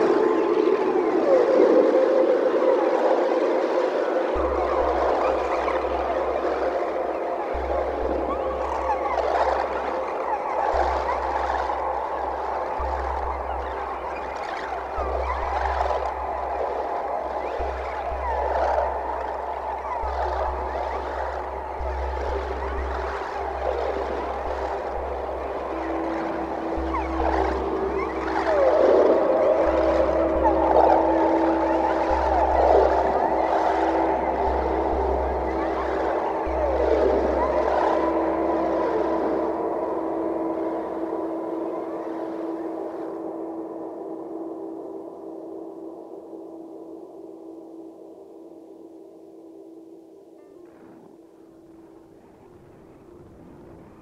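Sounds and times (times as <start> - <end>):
experimental electronic drones: 0.0 - 54.0
steady held tone: 0.0 - 54.0
deep bass: 17.4 - 40.6.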